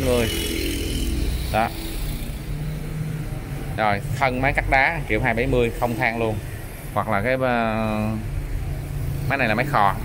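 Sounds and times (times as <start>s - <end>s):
rumble of motor vehicles: 0.0s - 10.0s.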